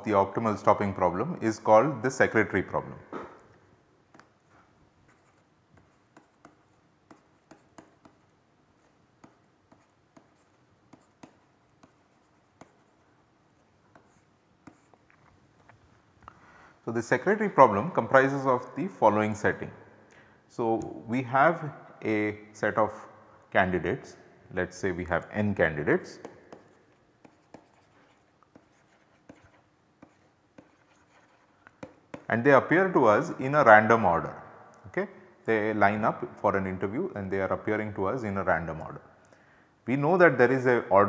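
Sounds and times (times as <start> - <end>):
pen writing on paper: 5.1 - 13.0, 13.9 - 15.0, 26.5 - 32.3
stylus tapping on a tablet: 5.8 - 8.2, 31.7 - 32.3.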